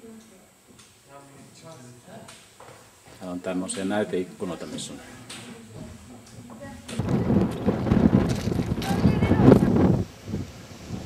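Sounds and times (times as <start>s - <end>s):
wind buffeting microphone: 5.7s - 11.0s.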